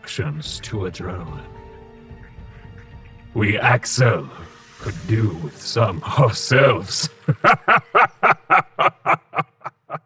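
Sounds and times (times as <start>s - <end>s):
man laughing: 7.0s - 10.0s.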